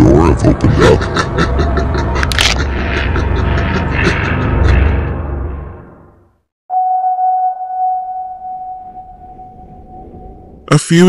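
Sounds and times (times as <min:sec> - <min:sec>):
steady ringing tone: 0:06.7 - 0:10.7.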